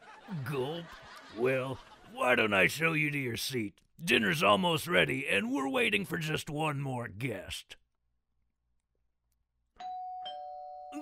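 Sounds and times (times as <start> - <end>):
two-tone doorbell chime: 9.8 - 11.0.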